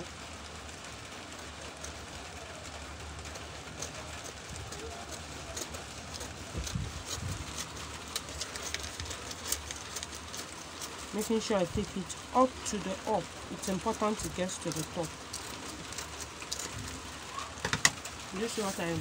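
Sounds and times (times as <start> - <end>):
scissors snipping paper: 3.4 - 19.0.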